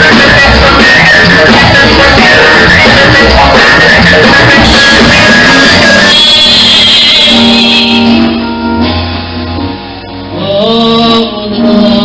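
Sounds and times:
loud live gospel band: 0:00.0 - 0:12.0.

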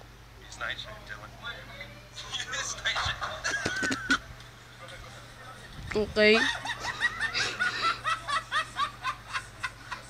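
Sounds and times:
person laughing: 0:03.0 - 0:04.2, 0:06.4 - 0:10.0.

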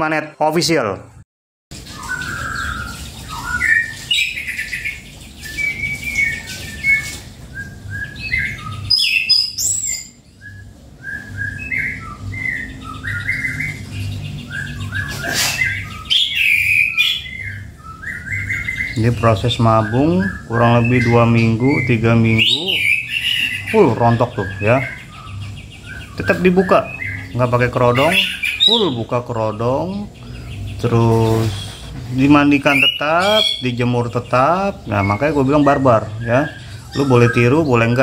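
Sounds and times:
low steady hum: 0:17.2 - 0:38.0.

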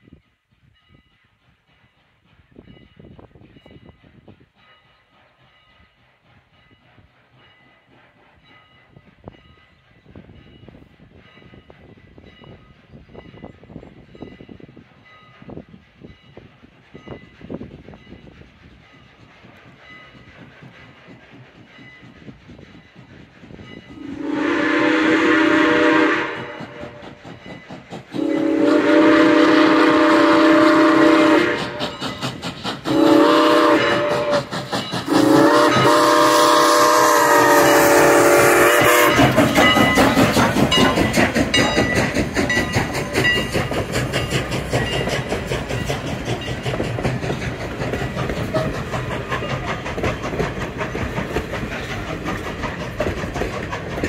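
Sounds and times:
train wheels rumbling on rail: 0:00.0 - 0:54.0
steam whistle blasts: 0:24.0 - 0:27.1, 0:28.2 - 0:32.0, 0:32.9 - 0:39.4.

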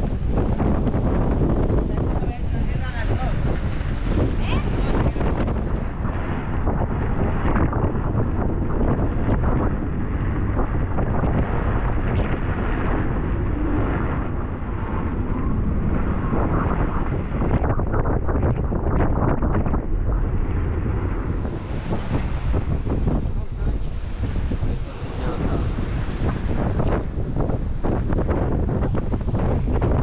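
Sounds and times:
rough sea breaking: 0:00.0 - 0:30.0
wind buffeting microphone: 0:00.0 - 0:30.0.

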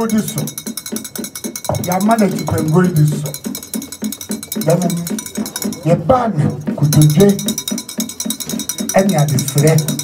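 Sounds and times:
fast metallic bell-like percussion: 0:00.0 - 0:10.0.

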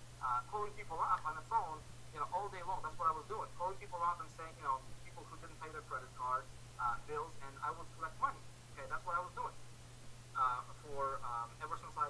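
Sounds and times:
steady low hum: 0:00.0 - 0:12.0
man talking over call: 0:00.2 - 0:09.6, 0:10.4 - 0:12.0.

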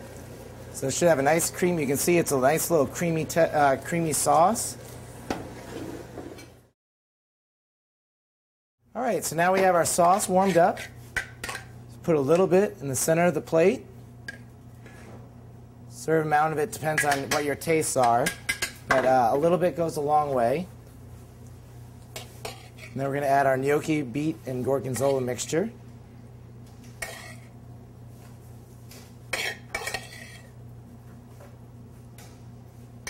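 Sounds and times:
kitchen room noise: 0:00.0 - 0:06.8, 0:08.8 - 0:33.0.

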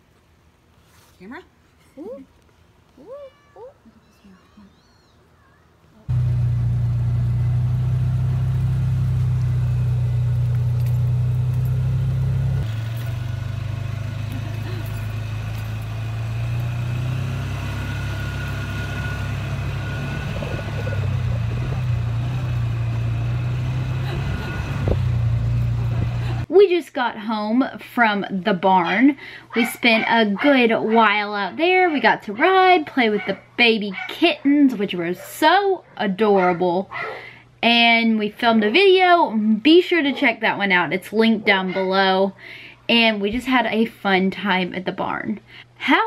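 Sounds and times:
kitten meowing: 0:03.0 - 0:05.6
utility vehicle engine droning: 0:06.1 - 0:26.5.

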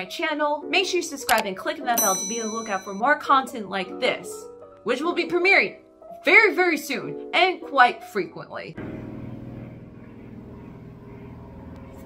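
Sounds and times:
airplane drone overhead: 0:08.8 - 0:12.0.

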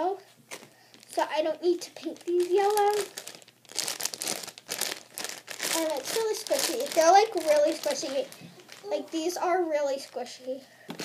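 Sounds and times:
girl's voice: 0:00.0 - 0:00.3, 0:01.1 - 0:03.2, 0:05.7 - 0:10.7
plastic bag crinkling: 0:00.5 - 0:11.0.

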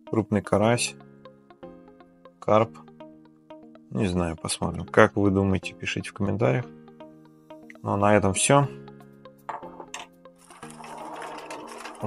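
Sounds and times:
quiet background music: 0:00.0 - 0:12.0
plastic packets rustling on desk: 0:10.4 - 0:12.0.

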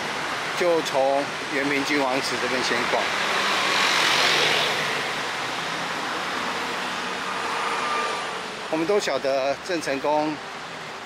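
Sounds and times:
steady traffic hum: 0:00.0 - 0:11.0
vehicle passing by: 0:02.8 - 0:08.8.

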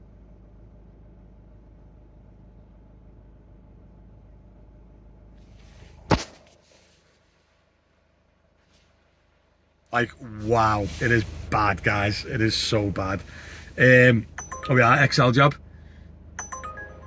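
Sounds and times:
car cabin engine hum: 0:00.0 - 0:17.0
sharp knock: 0:06.1 - 0:06.4.

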